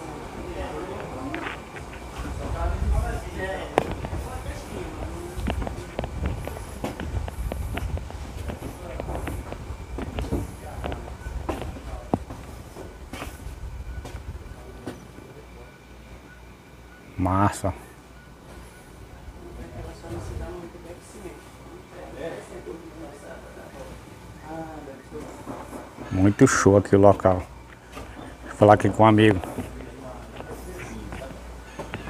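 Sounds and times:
low uneven rumble: 0.0 - 16.8
faint conversation: 0.0 - 32.0.

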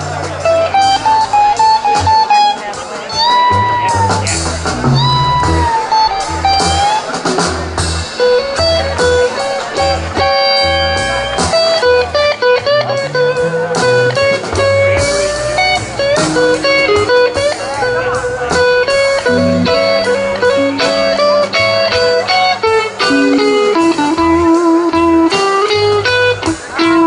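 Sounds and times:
bass guitar: 0.0 - 27.0
drums: 0.0 - 27.0
electric guitar lead lines: 0.0 - 27.0.

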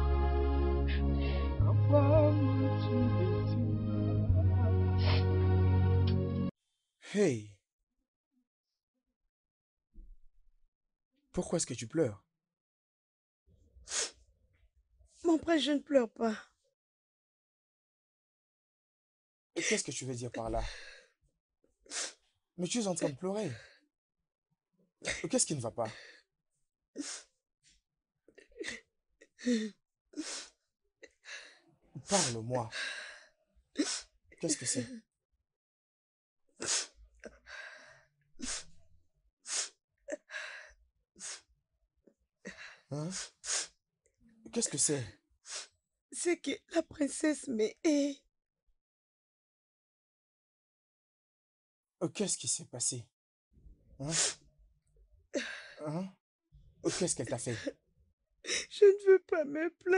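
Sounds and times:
woman sobbing: 4.0 - 5.2, 34.5 - 35.0, 58.5 - 59.9
woman sniffling: 38.4 - 38.7, 55.4 - 55.8.

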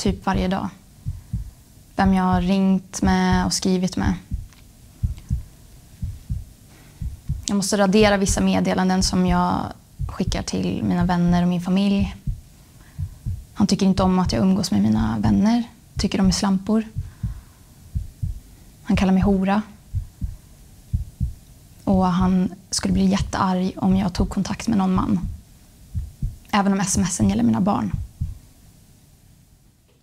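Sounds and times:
heartbeat double thump: 1.0 - 14.5, 16.0 - 24.4, 25.0 - 28.4.

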